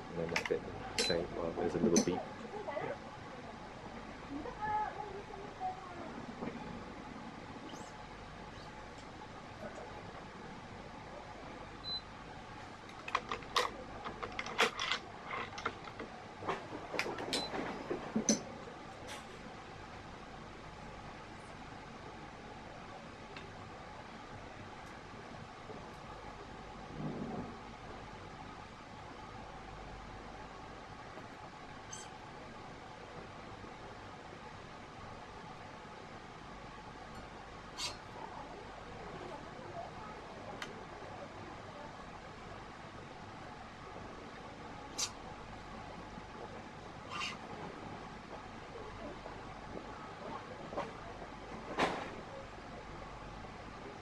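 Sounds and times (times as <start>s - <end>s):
room hum: 0.0s - 54.0s.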